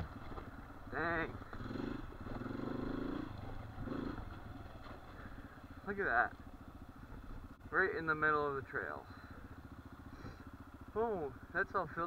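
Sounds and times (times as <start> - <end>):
dirt bike engine low revs: 0.0 - 11.6.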